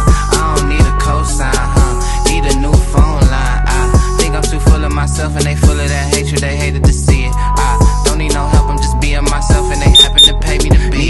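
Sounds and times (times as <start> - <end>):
hip hop music: 0.0 - 11.0
interval timer beeps: 9.9 - 10.4.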